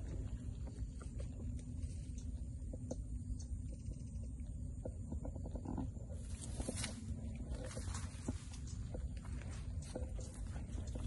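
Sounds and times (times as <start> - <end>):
low rumble of handling or wind: 0.0 - 11.0
undergrowth rustling and crackling: 6.1 - 11.0.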